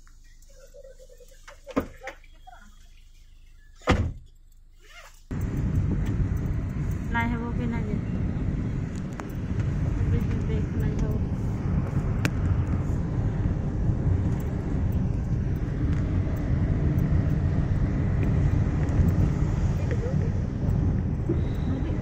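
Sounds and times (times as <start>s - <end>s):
vehicle rumble from inside cabin: 0.0s - 22.0s.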